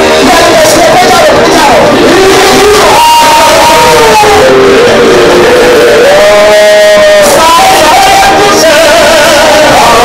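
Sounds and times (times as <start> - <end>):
congregation and band: 0.0 - 10.0
man singing through pa: 0.0 - 10.0.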